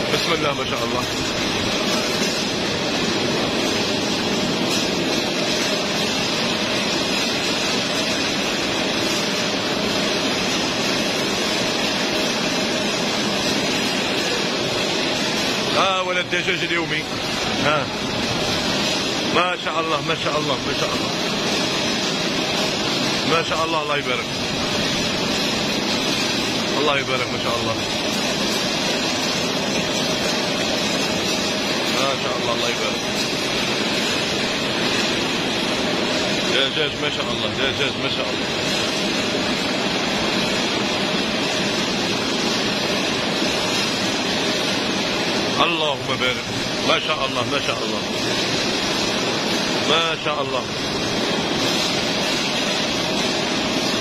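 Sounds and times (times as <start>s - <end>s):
processing line machinery rushing: 0.0s - 54.0s.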